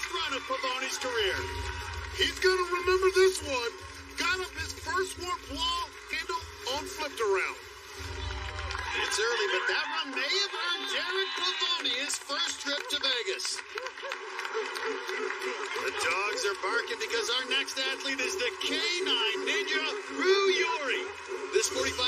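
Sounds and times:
people shouting and cheering: 0.0s - 22.0s.

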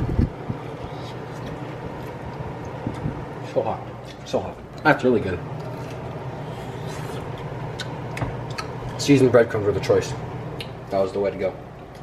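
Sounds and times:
steady low hum: 0.0s - 12.0s
person chewing: 0.8s - 3.1s, 5.6s - 9.0s.

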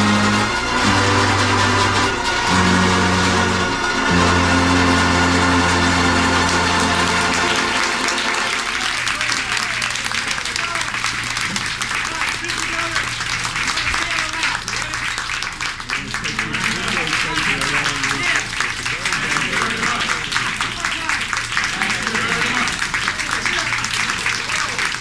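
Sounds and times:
banjo band playing: 0.0s - 9.8s, 16.4s - 20.6s, 21.2s - 24.2s
audience clapping: 0.0s - 25.0s.

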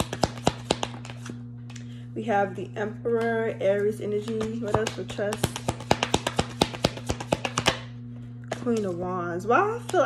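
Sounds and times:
cards being shuffled: 0.0s - 1.4s, 4.4s - 7.8s.

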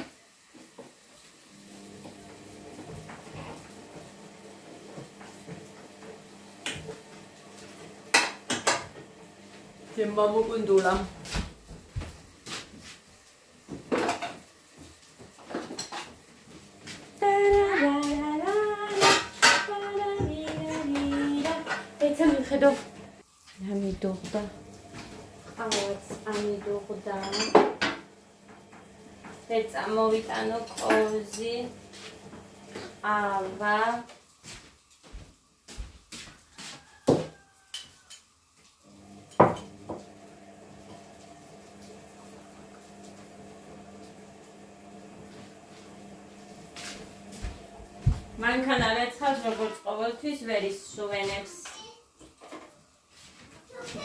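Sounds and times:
dishes and cutlery clinking: 13.9s - 14.5s, 15.4s - 16.2s, 18.9s - 19.8s, 20.4s - 22.6s, 25.6s - 28.1s, 30.4s - 32.1s, 37.2s - 38.3s, 39.3s - 39.8s, 49.2s - 49.8s.

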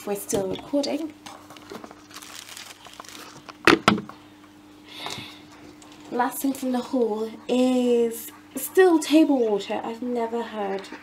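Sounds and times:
faint steady hum: 0.0s - 11.0s
plastic bottle crinkling: 1.2s - 4.2s.

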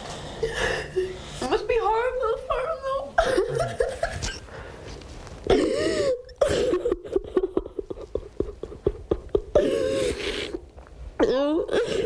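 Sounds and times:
man sobbing: 5.5s - 10.3s.

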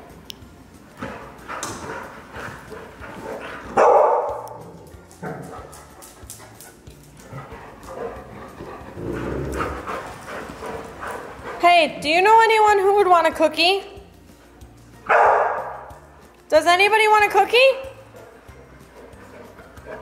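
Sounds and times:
dogs yipping playfully: 1.3s - 11.6s, 15.1s - 16.0s
dog barking: 3.8s - 4.6s, 15.1s - 15.9s.

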